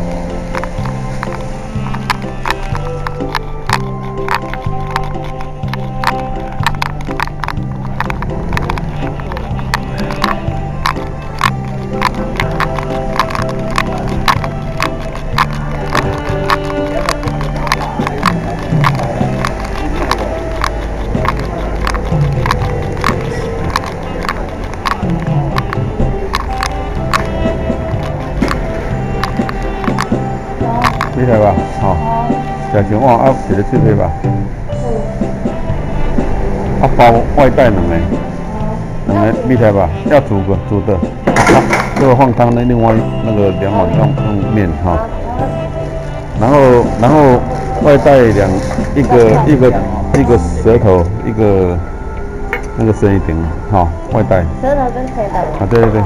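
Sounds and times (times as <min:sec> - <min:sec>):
backing track with drum beat: 0:00.0 - 0:51.9
saxophone melody: 0:00.0 - 0:56.0.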